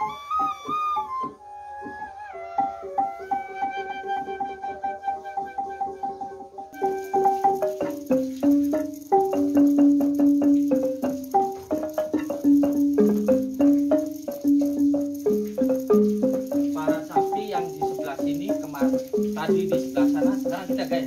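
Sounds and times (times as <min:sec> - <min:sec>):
xylophone melody: 0:00.0 - 0:01.3, 0:02.6 - 0:21.0.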